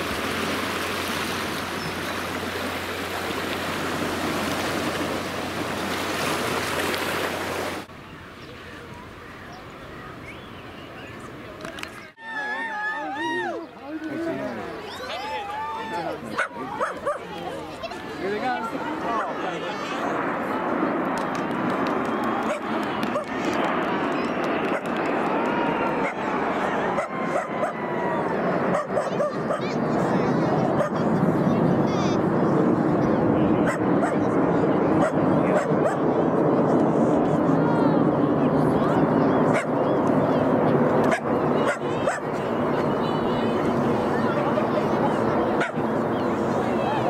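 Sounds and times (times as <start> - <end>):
jet engines rushing past: 0.0 - 47.0.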